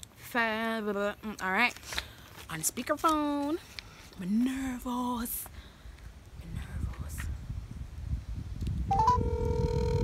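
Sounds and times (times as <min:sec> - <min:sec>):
wind rumbling on microphone: 0:05.8 - 0:10.0
phone ringback tone: 0:08.9 - 0:10.0
rising three-note phone chirp: 0:08.9 - 0:10.0.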